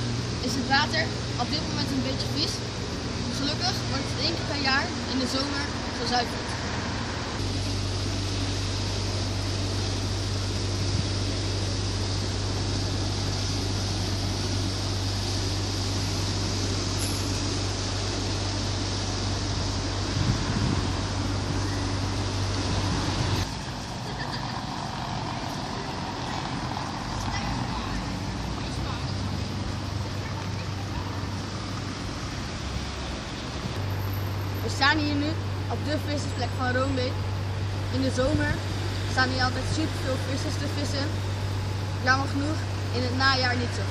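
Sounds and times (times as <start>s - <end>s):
low steady hum: 0.0s - 43.9s
road traffic: 0.0s - 43.9s.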